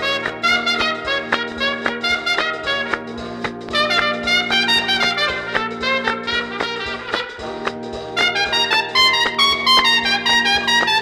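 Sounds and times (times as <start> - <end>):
dance band with trumpet-led brass: 0.0 - 11.0.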